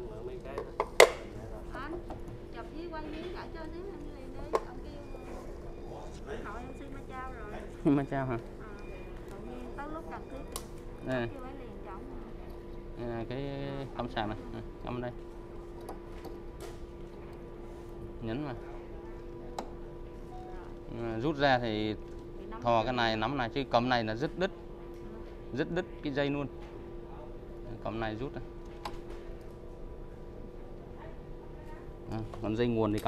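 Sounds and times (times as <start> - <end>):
faint steady hum: 0.0 - 33.0.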